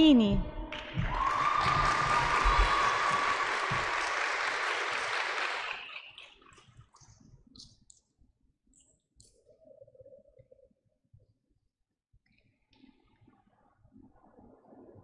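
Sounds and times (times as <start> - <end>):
audience applause: 0.8 - 6.2.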